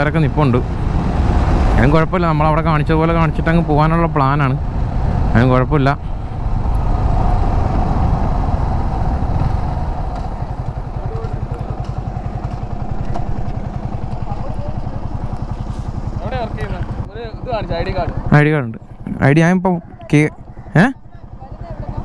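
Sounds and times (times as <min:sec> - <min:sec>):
road and wind noise: 0:00.0 - 0:22.0
motorcycle engine idling: 0:06.0 - 0:22.0
man speaking: 0:16.2 - 0:22.0.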